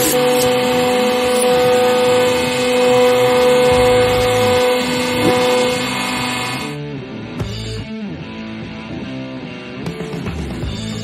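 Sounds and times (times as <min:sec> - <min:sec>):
hydraulic pump droning: 0:00.0 - 0:06.8.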